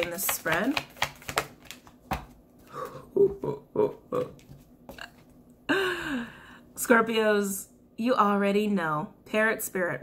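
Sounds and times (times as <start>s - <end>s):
woman humming: 2.7s - 4.4s.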